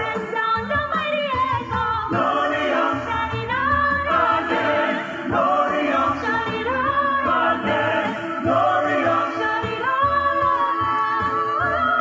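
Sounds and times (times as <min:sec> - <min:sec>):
vocal group singing in harmony: 0:00.0 - 0:12.0
woman singing lead: 0:00.0 - 0:12.0.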